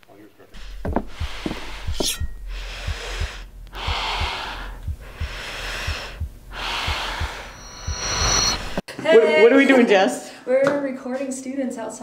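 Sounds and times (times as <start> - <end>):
faint low thuds: 0.6 - 8.8
person breathing heavily: 0.6 - 8.8
brief high whine: 7.3 - 8.8.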